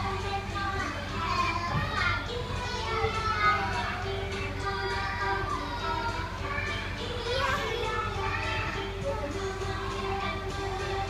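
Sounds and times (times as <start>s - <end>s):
background music: 0.0s - 11.0s
young children's voices: 0.0s - 11.0s.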